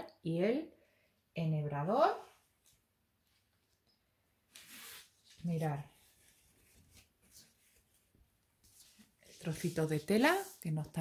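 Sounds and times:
soft scrapes: 4.5s - 11.0s.

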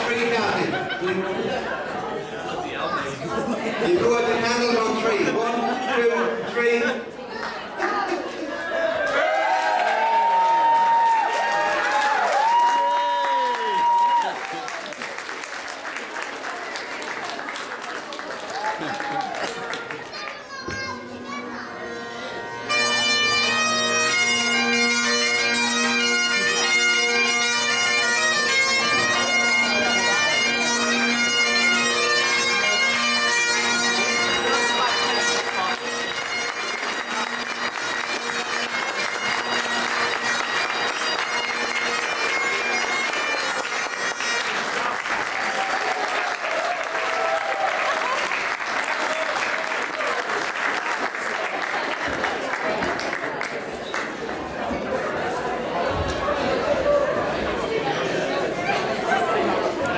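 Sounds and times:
crowd clapping and applause: 7.2s - 21.4s, 22.7s - 55.3s
bagpipes playing a jig: 20.9s - 45.0s.

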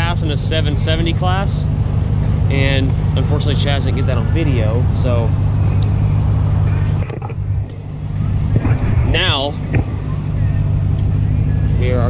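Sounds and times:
speech fragments: 0.0s - 1.6s, 2.5s - 5.4s, 8.4s - 12.0s
vehicle engine idling: 0.0s - 12.0s.

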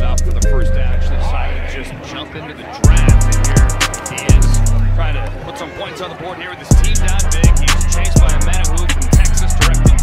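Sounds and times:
music with heavy bass beat: 0.0s - 0.8s, 2.8s - 5.2s, 6.7s - 10.0s.

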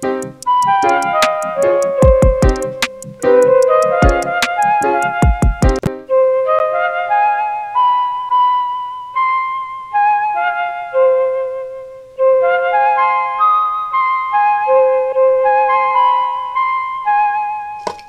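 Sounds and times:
slow synthesizer melody: 0.0s - 17.8s.

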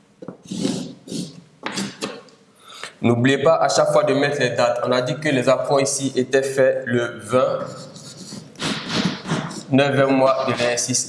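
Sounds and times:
chalk scratching on blackboard: 0.4s - 2.2s, 7.6s - 11.0s.

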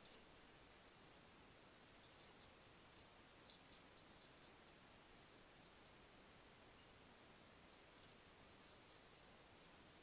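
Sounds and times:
quiet hiss: 0.0s - 10.0s
hedgehog crunching biscuits: 1.9s - 10.0s.

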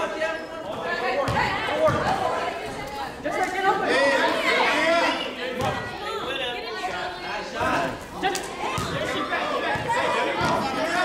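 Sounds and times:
voices calling out and chattering: 0.0s - 11.0s.

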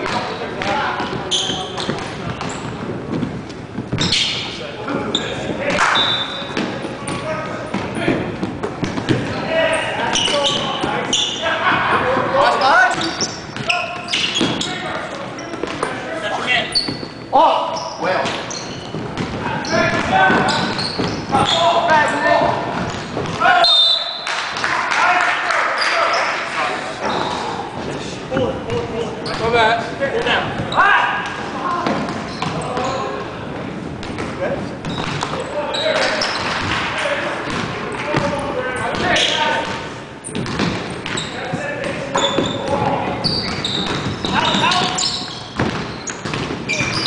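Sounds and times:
sneakers squeaking: 0.0s - 24.3s, 25.8s - 47.0s
players' voices: 0.0s - 47.0s
basketball bouncing on hardwood: 40.4s - 41.2s, 45.5s - 47.0s.

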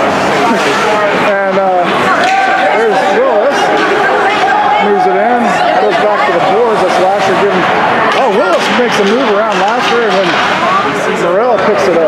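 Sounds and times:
voices talking: 0.0s - 12.0s.

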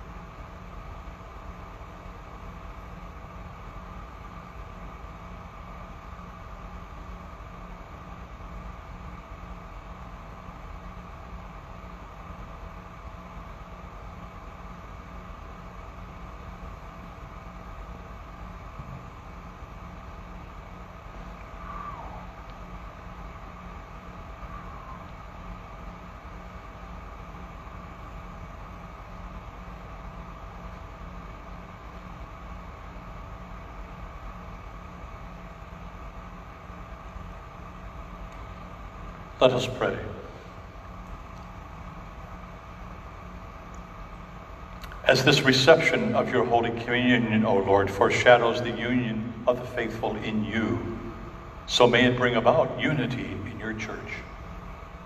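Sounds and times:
room hum and hiss: 0.0s - 55.0s.

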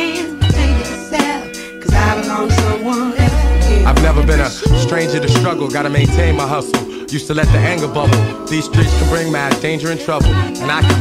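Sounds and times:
hip hop music: 0.0s - 11.0s.

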